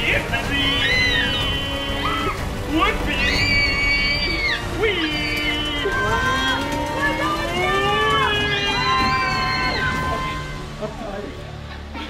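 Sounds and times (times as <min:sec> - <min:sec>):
people screaming and yelling: 0:00.1 - 0:11.0.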